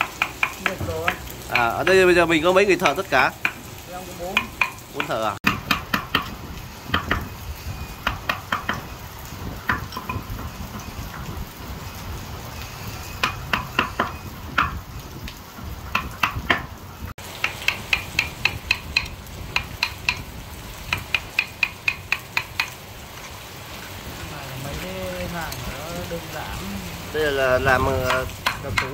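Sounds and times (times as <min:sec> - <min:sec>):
mallet knocking on chisel: 0:28.0 - 0:28.9.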